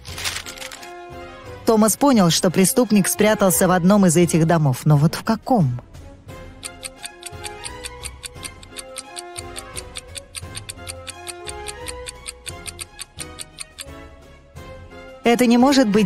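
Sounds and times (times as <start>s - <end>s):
light background music: 0.0s - 16.0s
fast clock ticking: 6.6s - 13.9s.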